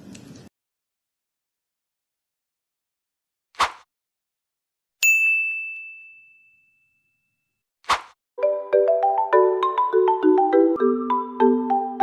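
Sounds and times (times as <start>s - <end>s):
brief swish: 3.6s - 3.9s, 7.8s - 8.2s
bell-like ding: 5.0s - 7.5s
upbeat marimba music: 8.4s - 12.0s.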